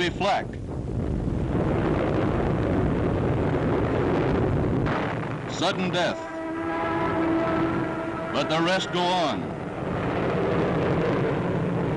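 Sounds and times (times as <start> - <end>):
heavy bomber engines: 0.0 - 11.9
flak explosions: 0.6 - 11.9.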